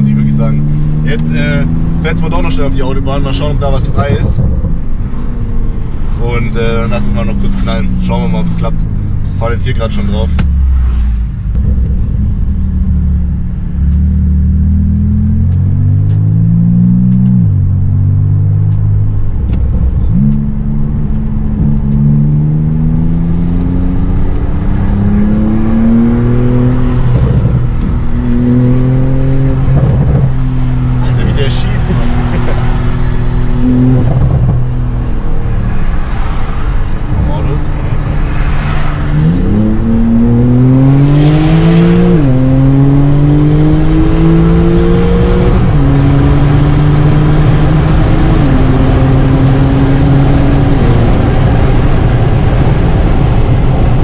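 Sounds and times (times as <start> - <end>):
car engine accelerating: 0.0 - 54.0.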